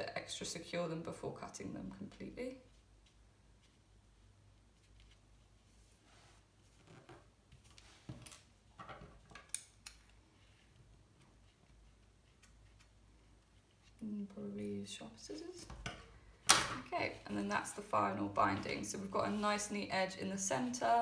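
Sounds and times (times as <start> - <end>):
soft paper rustles: 2.6 - 8.3.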